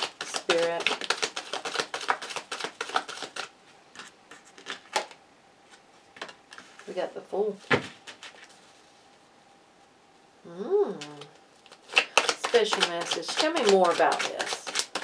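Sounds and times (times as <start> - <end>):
cards being shuffled: 0.0 - 7.0, 7.7 - 8.6, 11.0 - 15.0.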